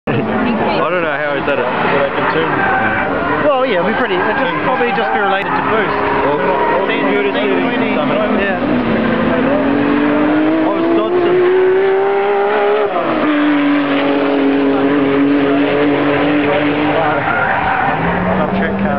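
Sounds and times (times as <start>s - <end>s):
car engine revving high: 0.1s - 18.9s
tyres squealing: 1.4s - 18.4s.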